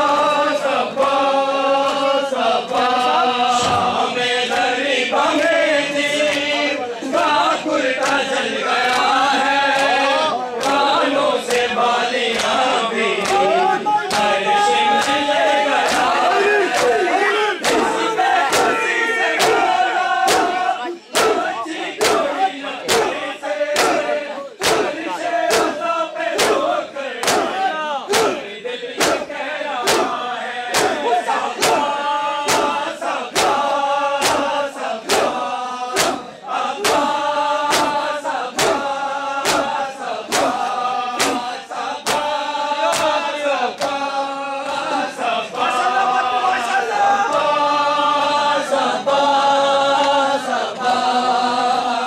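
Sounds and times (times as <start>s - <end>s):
men chanting: 0.0s - 52.0s
hands slapping chests: 8.0s - 11.7s, 12.3s - 44.9s.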